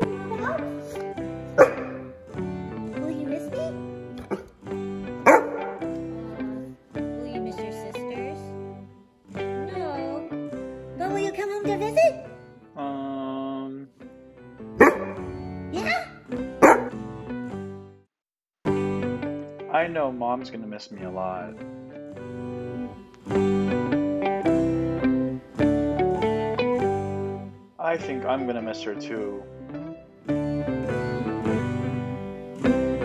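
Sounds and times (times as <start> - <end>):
guitar music: 0.0 - 18.0, 18.7 - 33.0
dog barking: 1.5 - 2.2, 4.2 - 4.6, 5.2 - 5.9, 14.8 - 15.4, 16.6 - 17.0.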